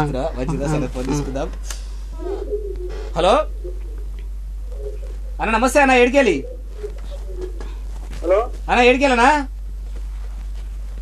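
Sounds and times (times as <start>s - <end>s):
soft low cooing call: 2.1s - 5.4s, 6.1s - 8.4s.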